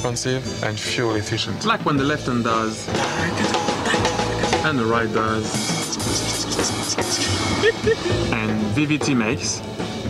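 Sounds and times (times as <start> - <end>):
backing music track: 0.0 - 10.0
drum kit playing: 1.7 - 10.0
person laughing: 3.0 - 4.6, 5.6 - 8.3.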